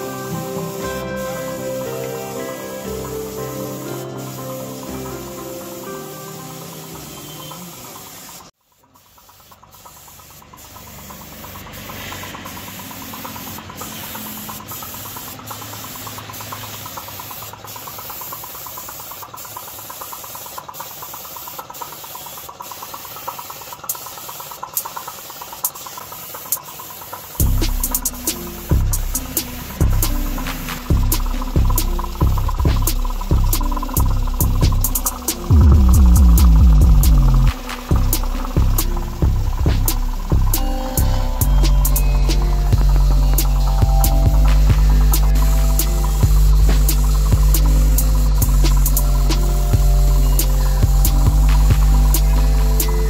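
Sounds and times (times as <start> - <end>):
music with heavy beat: 0.0 - 7.4, 27.4 - 53.0
background music: 0.0 - 8.3, 27.4 - 53.0
paint spray gun hissing: 0.0 - 53.0
low hum: 27.4 - 53.0.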